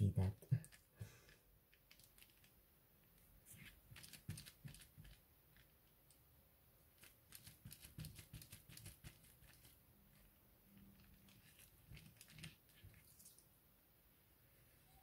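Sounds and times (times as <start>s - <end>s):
faint taps and rubbing on paper: 7.0s - 10.2s.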